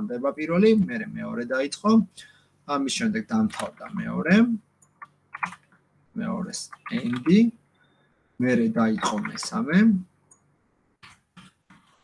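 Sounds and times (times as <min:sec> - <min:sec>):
person speaking: 0:00.0 - 0:07.6, 0:08.4 - 0:10.1
computer keyboard clicks: 0:04.8 - 0:05.7, 0:06.7 - 0:07.4.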